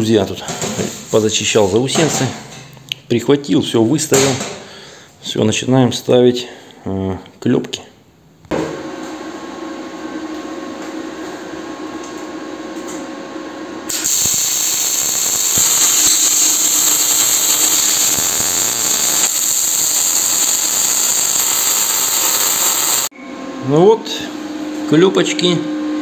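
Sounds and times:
angle grinder grinding steel: 13.9 - 23.1
power tool motor whine: 13.9 - 23.1.

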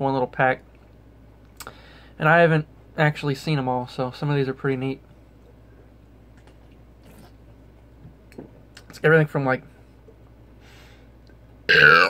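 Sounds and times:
man burping: 11.7 - 12.0.

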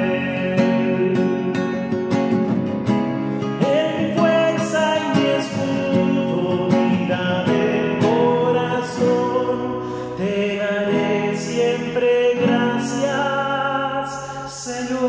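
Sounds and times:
man singing a hymn: 0.0 - 1.8, 3.6 - 15.0
strummed nylon-string guitar: 0.0 - 15.0.

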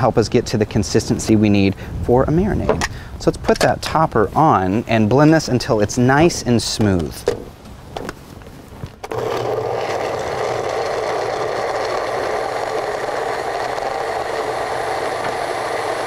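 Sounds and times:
blender running: 9.1 - 16.0.

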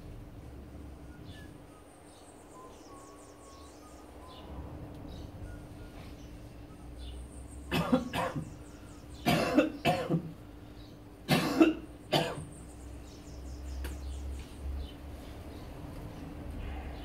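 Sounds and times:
man coughing and retching: 7.7 - 8.5, 9.2 - 10.3, 11.3 - 12.5.

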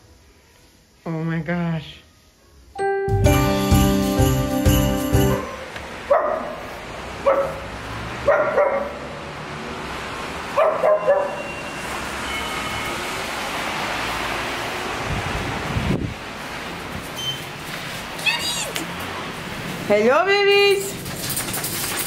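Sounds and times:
dog barking: 5.4 - 9.1, 10.6 - 11.5.

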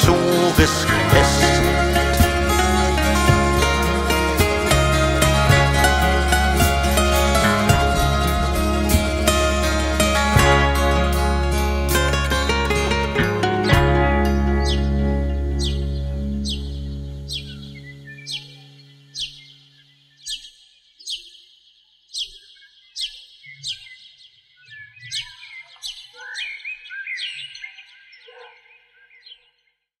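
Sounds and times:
sustained low music chord: 0.0 - 19.2
bird chirping high: 14.3 - 29.5.

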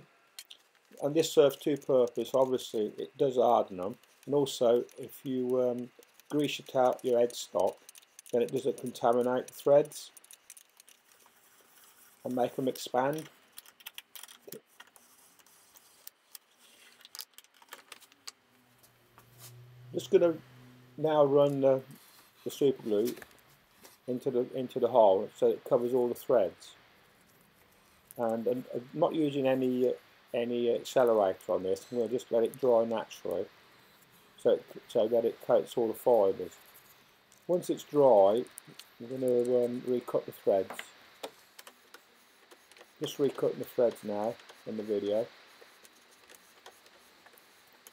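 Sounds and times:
small objects clicking and tapping: 0.4 - 2.7, 3.8 - 11.9, 12.7 - 18.4, 40.6 - 44.6.

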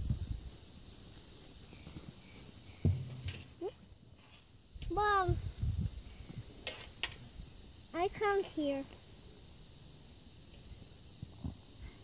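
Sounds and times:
low thuds: 2.7 - 3.6.

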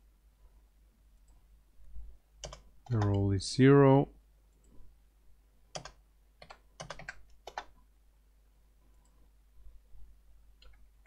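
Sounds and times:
keyboard keystrokes: 2.4 - 3.2, 5.8 - 7.7.

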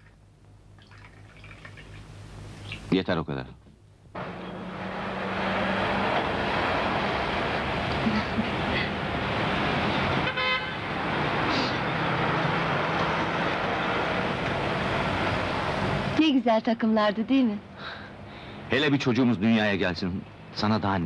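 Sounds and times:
city street traffic: 4.1 - 21.0
car horn toot: 10.0 - 10.9.

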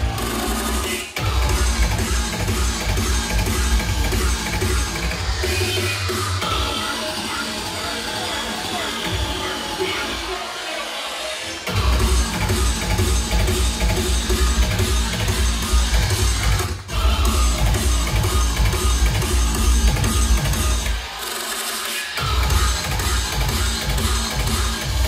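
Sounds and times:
heavy sub-bass: 0.0 - 10.6, 11.6 - 21.1, 22.2 - 25.0
drum and bass mix: 0.0 - 25.0.

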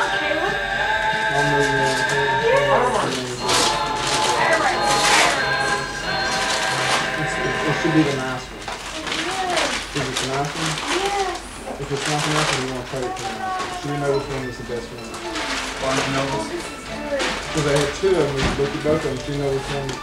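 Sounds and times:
background music: 0.0 - 8.7, 13.0 - 20.0
indistinct voices: 0.0 - 20.0
paper crinkling: 3.0 - 20.0.

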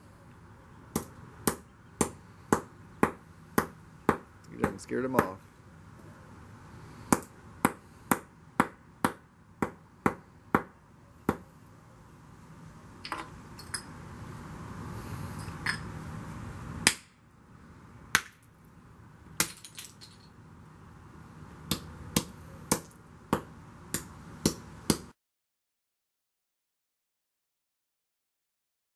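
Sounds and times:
hammer cracking shells on concrete: 7.1 - 10.7, 16.8 - 17.2, 18.1 - 18.5, 19.4 - 20.3, 21.7 - 25.1.

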